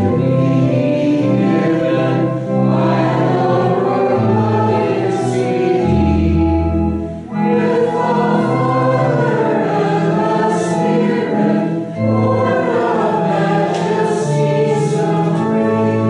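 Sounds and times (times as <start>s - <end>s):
congregation singing a hymn: 0.0s - 16.0s
organ chords: 0.0s - 16.0s.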